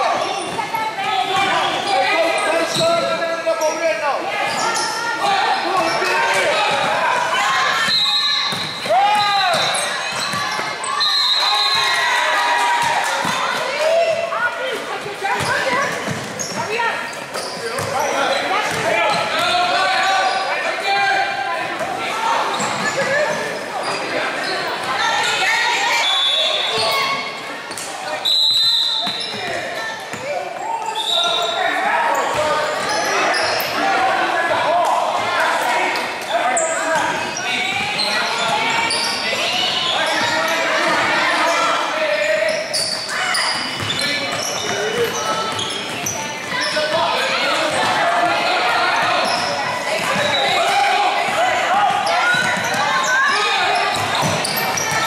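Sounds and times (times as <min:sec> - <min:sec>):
people talking and shouting: 0:00.0 - 0:55.0
referee's whistle blasts: 0:07.8 - 0:09.8, 0:10.9 - 0:12.0, 0:25.9 - 0:27.1, 0:28.2 - 0:29.4
basketballs bouncing on hardwood: 0:08.5 - 0:10.7, 0:15.3 - 0:16.8, 0:53.8 - 0:55.0.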